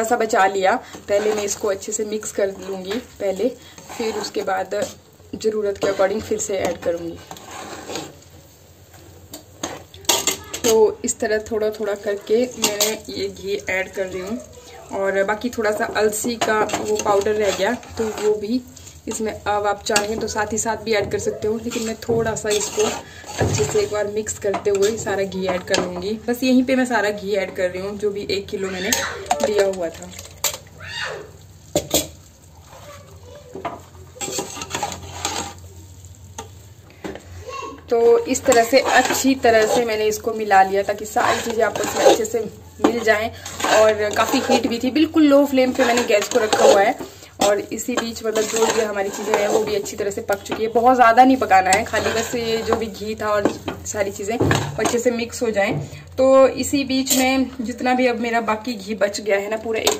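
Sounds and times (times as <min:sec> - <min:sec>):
metal ladle scraping a pot: 0:00.0 - 0:08.6, 0:09.3 - 0:14.3, 0:15.1 - 0:26.0, 0:31.7 - 0:35.7, 0:37.9 - 0:55.2, 0:57.0 - 0:57.4
light sizzle: 0:00.0 - 0:59.9.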